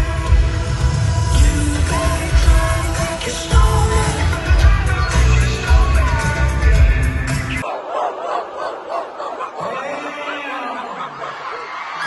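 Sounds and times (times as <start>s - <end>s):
live pop music with heavy bass: 0.0s - 7.6s
crowd screaming and cheering: 0.0s - 12.0s.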